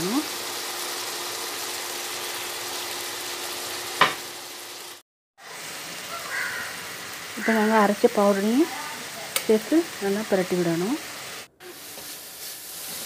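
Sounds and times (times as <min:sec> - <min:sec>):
onions sizzling in a pot: 0:00.0 - 0:13.0
sharp knock: 0:04.0 - 0:04.2.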